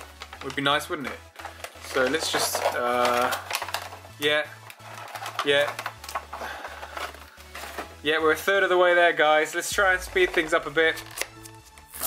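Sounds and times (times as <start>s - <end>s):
plastic packaging handled: 0.0s - 8.8s
foil packs rustling: 0.0s - 9.1s
quiet background music: 0.0s - 12.0s.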